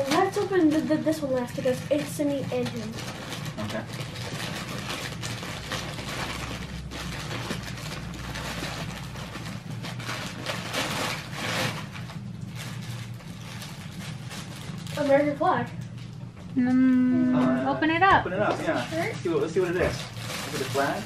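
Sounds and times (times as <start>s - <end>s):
wrapping paper ripping and rustling: 0.0s - 15.9s, 18.7s - 21.0s
steady low hum: 0.0s - 21.0s.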